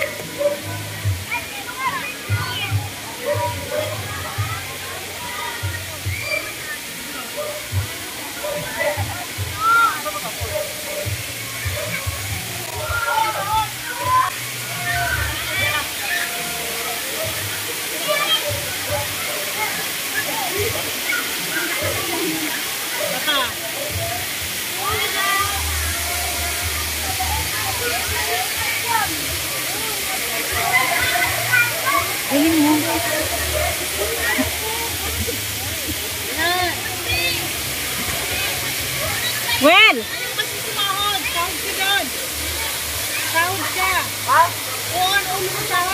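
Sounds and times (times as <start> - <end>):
people chattering and calling: 0.0 - 45.9
water pouring into a pool: 0.0 - 45.9.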